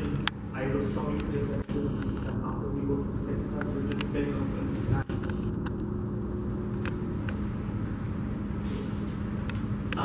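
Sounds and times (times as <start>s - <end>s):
low room rumble and hum: 0.0s - 10.0s.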